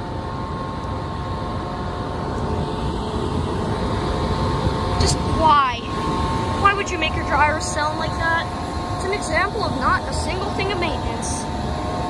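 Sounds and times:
blower dryers roaring: 0.0 - 12.0.

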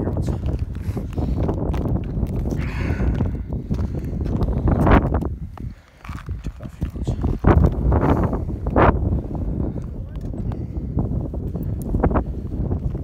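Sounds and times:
low rumble: 0.0 - 13.0.

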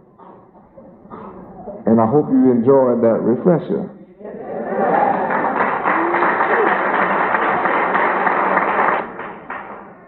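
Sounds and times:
audience applauding: 4.8 - 10.0.

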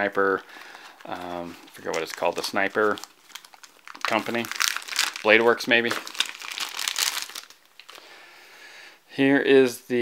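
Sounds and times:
plastic bag crinkling: 0.0 - 8.1.

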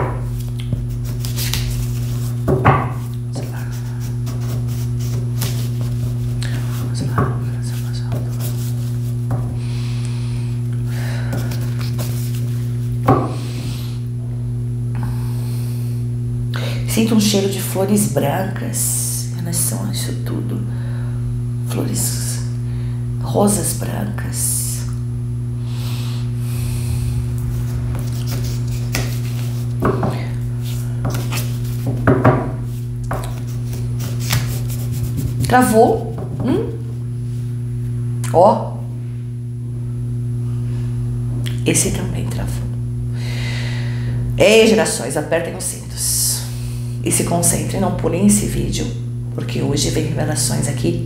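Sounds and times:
low electrical hum: 0.0 - 51.0
cards being shuffled: 0.4 - 2.4, 3.8 - 6.4, 11.4 - 12.6, 33.1 - 35.5.

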